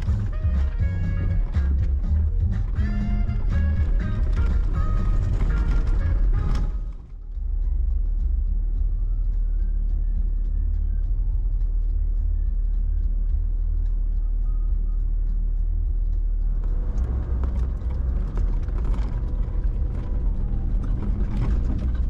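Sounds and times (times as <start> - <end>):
music: 0.0 - 22.0
off-road vehicle rumbling: 0.0 - 22.0.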